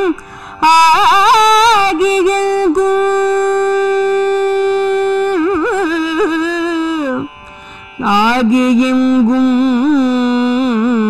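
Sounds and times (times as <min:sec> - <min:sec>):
woman singing a long note: 0:08.0 - 0:11.0.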